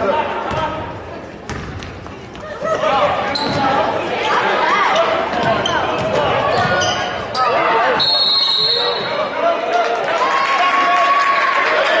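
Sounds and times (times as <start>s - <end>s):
referee's whistle: 7.9s - 9.2s.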